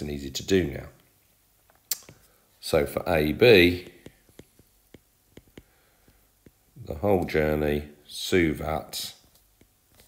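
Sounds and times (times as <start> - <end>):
stylus tapping on glass screen: 3.8 - 6.6.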